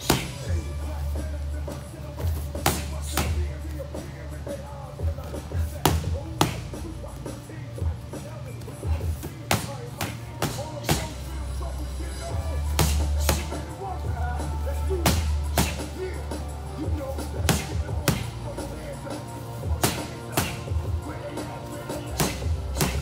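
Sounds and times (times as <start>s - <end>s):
gloved punches hitting pads: 0.0s - 0.6s, 2.3s - 3.5s, 5.5s - 6.8s, 8.9s - 11.2s, 12.8s - 13.6s, 15.0s - 15.9s, 17.4s - 18.3s, 19.7s - 21.0s, 22.1s - 23.0s
music with heavy bass: 0.0s - 23.0s.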